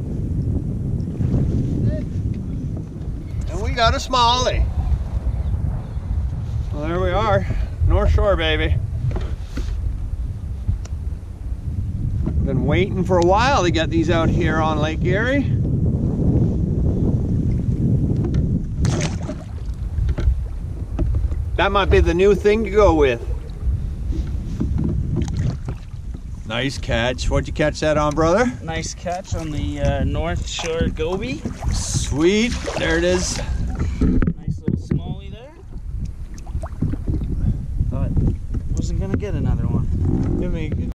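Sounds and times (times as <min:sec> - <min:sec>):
water lapping at kayak: 0:00.0 - 0:06.7, 0:16.6 - 0:38.9
wind buffeting microphone: 0:00.0 - 0:40.9.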